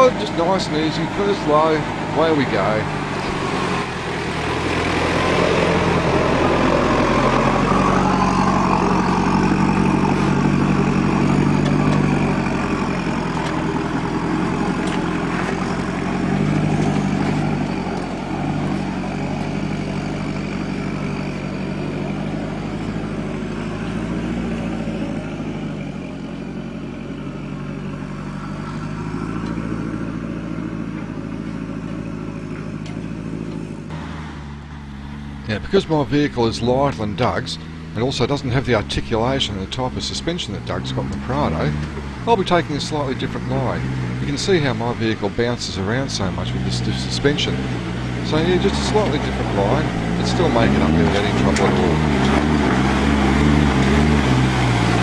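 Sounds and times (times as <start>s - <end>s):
off-road vehicle engine climbing: 0.0s - 55.0s.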